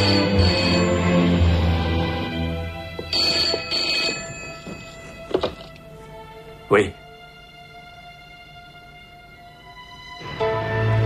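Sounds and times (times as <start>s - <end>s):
telephone bell ringing: 0.0s - 1.6s, 3.0s - 5.6s
background music: 0.0s - 11.0s.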